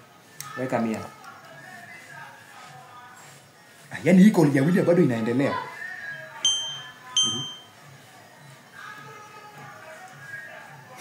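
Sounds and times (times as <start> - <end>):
high electronic ding: 6.4 - 7.7.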